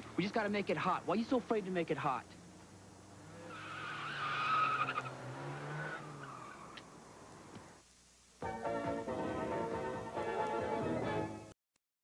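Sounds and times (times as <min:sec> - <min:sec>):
tyres squealing: 0:03.3 - 0:06.8.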